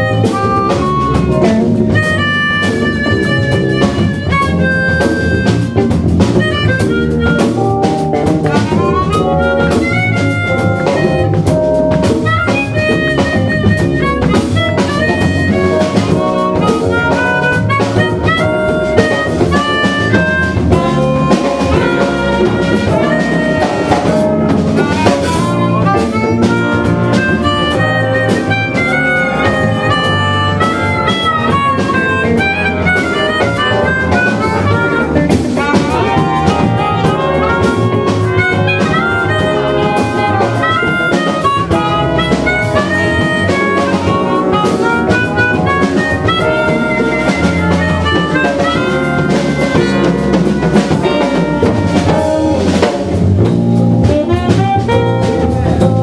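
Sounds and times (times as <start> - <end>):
bass: 0.0 - 56.0
drum kit: 0.0 - 56.0
electric guitar: 0.0 - 56.0
harmonica lead: 0.0 - 56.0
horn section: 0.0 - 56.0.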